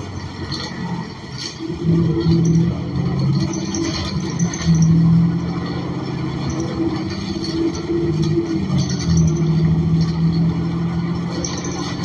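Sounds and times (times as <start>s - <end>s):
bus engine drone: 0.0s - 12.0s
road noise: 0.0s - 12.0s.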